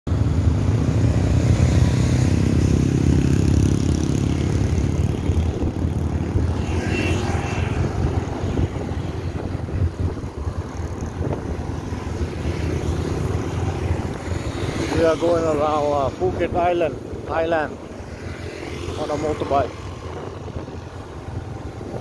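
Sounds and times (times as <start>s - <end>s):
road and wind rumble: 0.1s - 22.0s.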